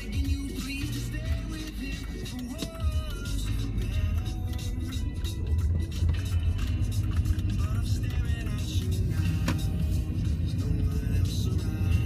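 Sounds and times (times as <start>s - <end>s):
car road and engine rumble: 0.0s - 12.0s
song with singing voice: 0.0s - 12.0s.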